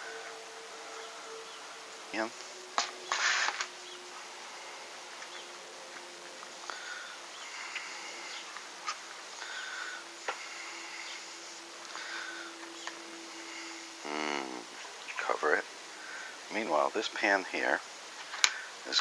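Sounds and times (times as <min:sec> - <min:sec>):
low buzzing hum: 0:00.0 - 0:19.0.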